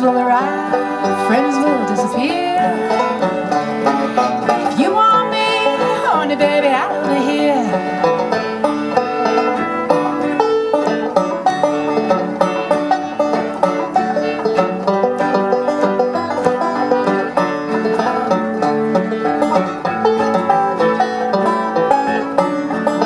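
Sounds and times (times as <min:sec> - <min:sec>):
bluegrass band playing: 0:00.0 - 0:23.0.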